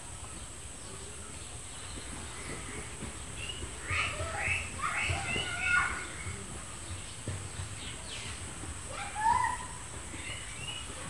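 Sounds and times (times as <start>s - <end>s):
faint rural background: 0.0s - 11.0s.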